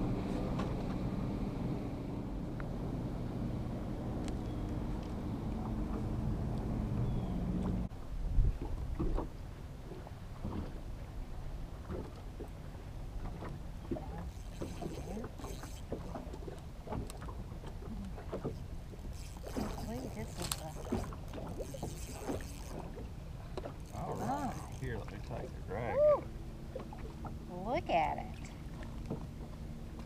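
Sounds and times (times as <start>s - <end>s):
water lapping against a hull: 0.0s - 30.0s.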